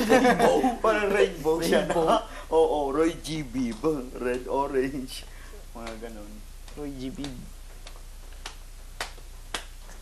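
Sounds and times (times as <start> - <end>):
sharp rhythmic clicks: 3.4 - 10.0.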